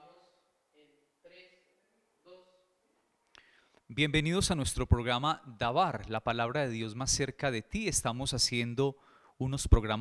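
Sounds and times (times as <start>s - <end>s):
man speaking into microphone: 3.9s - 10.0s.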